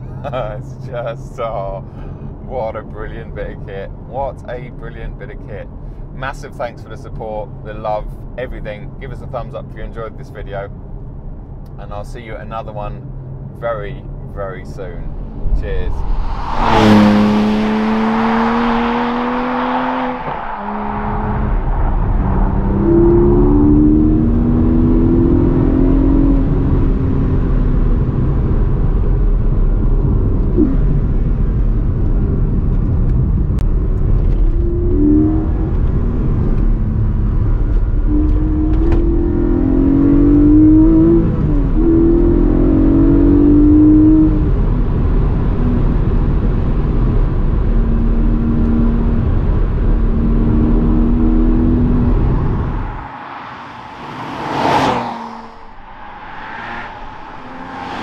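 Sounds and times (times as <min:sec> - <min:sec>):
road noise rumble: 0:00.0 - 0:58.0
car engine revving through gears: 0:15.2 - 0:58.0.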